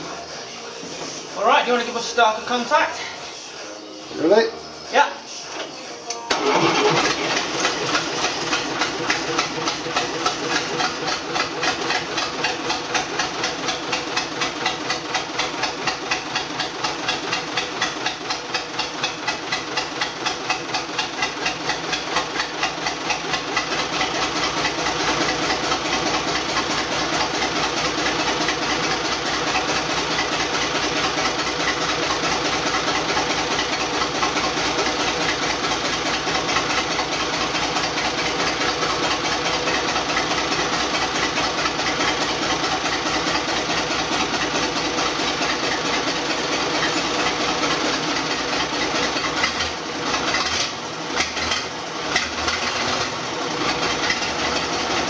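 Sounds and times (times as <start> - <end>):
diesel engine idling: 0.0 - 55.0.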